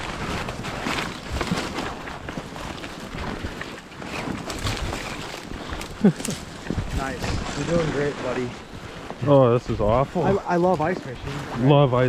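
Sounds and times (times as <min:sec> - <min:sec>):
branches scraping against gear: 0:00.0 - 0:12.0
footsteps in snow: 0:00.0 - 0:12.0.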